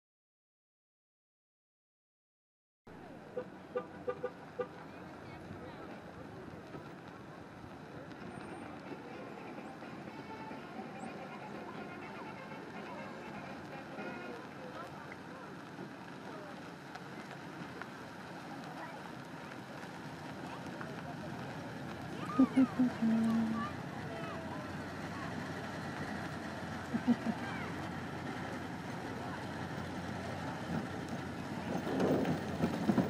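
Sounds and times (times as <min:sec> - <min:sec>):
murmur of voices: 0:02.9 - 0:33.0
pickup truck running: 0:02.9 - 0:33.0
car horn toots: 0:03.4 - 0:04.8.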